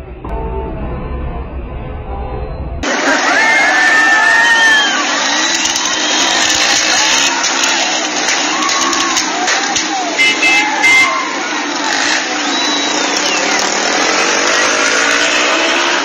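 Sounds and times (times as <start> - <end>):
muffled recording: 0.0 - 16.0
crowd of protesters shouting: 2.8 - 16.0
motorbike engines running: 2.8 - 16.0.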